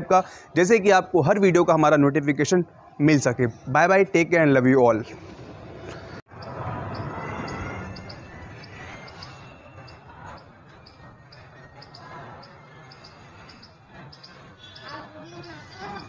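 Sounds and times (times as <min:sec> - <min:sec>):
outdoor background noise: 0:00.0 - 0:16.0
distant children calling out: 0:06.9 - 0:16.0.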